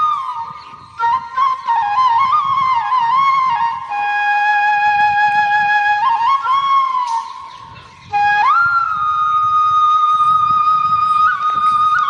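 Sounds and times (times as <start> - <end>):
flute music: 0.0 - 12.0.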